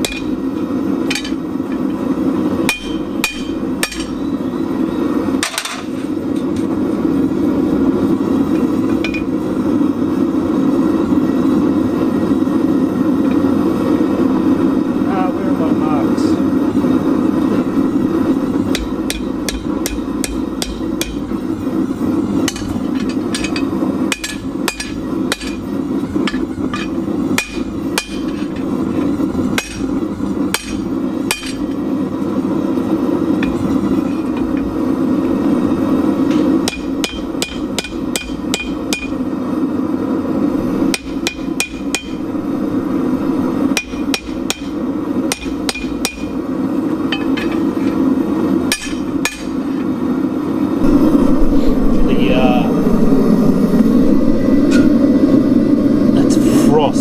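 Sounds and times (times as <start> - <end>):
hammer striking anvil: 0.0 - 0.4, 2.7 - 4.2, 18.7 - 21.3, 22.5 - 25.6, 26.3 - 28.7, 29.6 - 29.9, 30.6 - 31.7, 36.6 - 39.2, 43.8 - 46.4, 48.7 - 49.6
gas forge burner rushing: 0.0 - 57.0.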